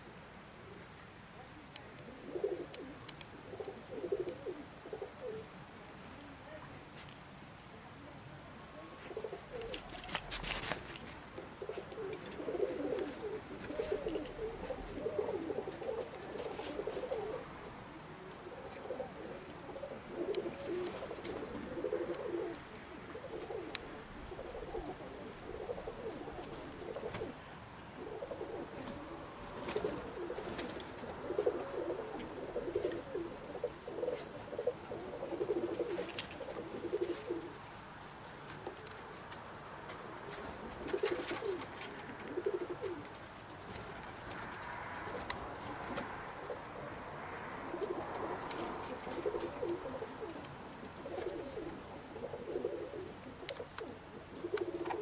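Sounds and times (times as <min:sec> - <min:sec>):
pigeons cooing: 0:02.0 - 0:05.6, 0:08.6 - 0:55.0.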